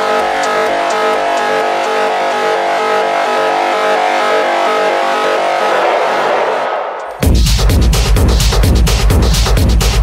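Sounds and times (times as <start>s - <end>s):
held synthesizer chords: 0.0s - 9.9s.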